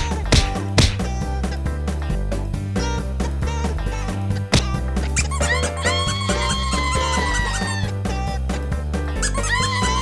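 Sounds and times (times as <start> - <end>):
background music with steady bass: 0.0 - 10.0.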